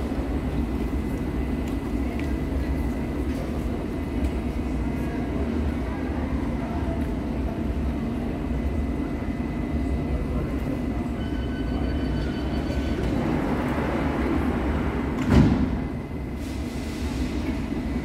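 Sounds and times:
train low rumble: 0.0s - 18.0s
high warning beeps: 11.1s - 13.2s
sliding doors shutting: 12.7s - 17.7s.

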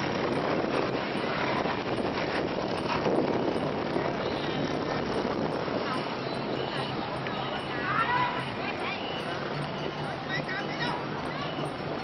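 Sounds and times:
paddles in water: 0.0s - 12.0s
wind on microphone: 0.0s - 12.0s.

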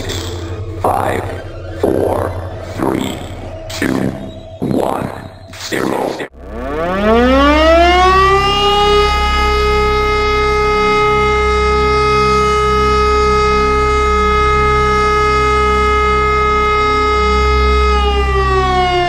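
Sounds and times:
air raid siren wailing: 0.0s - 19.0s
low pulsing rumble: 0.0s - 19.0s.

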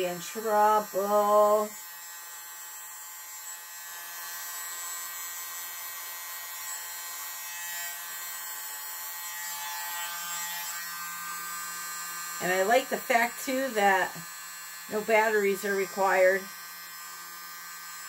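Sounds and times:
electric blower whining: 0.0s - 1.9s, 10.9s - 18.0s.

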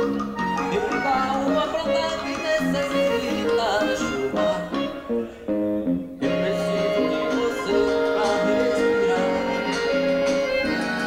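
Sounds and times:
guitar-led backing track: 0.0s - 11.0s
man singing into a microphone: 0.6s - 5.5s, 6.2s - 11.0s.

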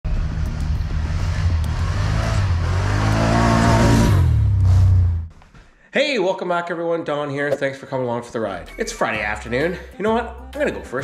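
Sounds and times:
atv engine revving: 0.1s - 5.3s.

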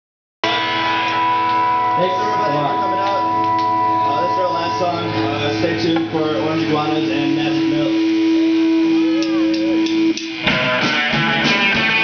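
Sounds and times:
electric guitar chord ringing: 0.4s - 12.0s
person talking: 2.0s - 8.1s.

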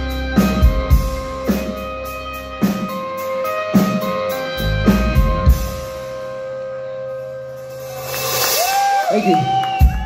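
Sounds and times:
electric guitar chord ringing: 0.0s - 8.2s
audience cheering and whooping: 7.8s - 10.0s.

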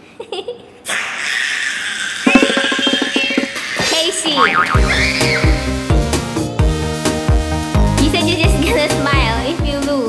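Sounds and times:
upbeat music: 2.3s - 3.6s, 4.3s - 10.0s.

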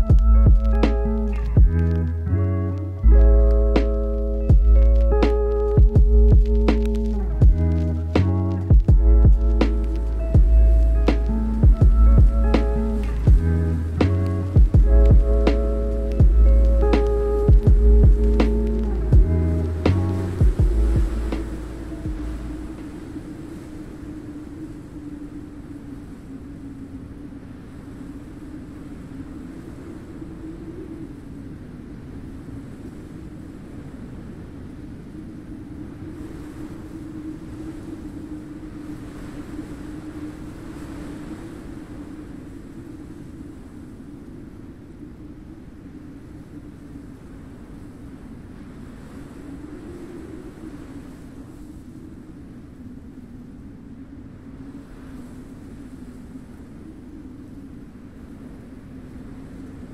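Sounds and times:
rushing wind with moaning howl: 0.0s - 59.9s.

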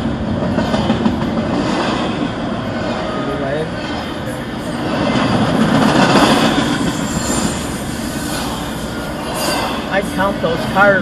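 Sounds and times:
freight train wheels on rails: 0.0s - 11.0s.

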